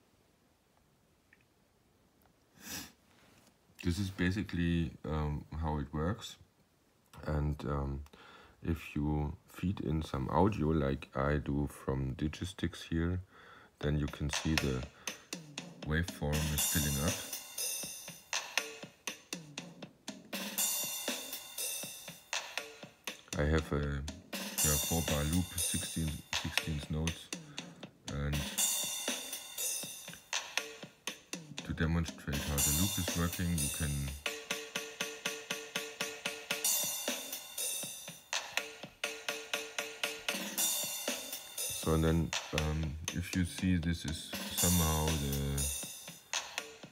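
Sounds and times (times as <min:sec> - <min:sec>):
electronic kick drums: 0:14.0 - 0:46.9
hi-hat or cymbal hits: 0:14.0 - 0:46.9.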